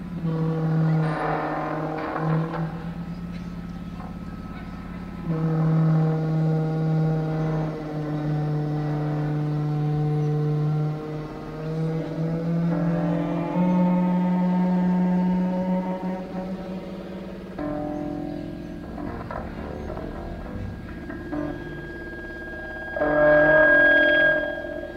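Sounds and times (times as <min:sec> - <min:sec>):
electronic drone tones: 0:00.0 - 0:24.9.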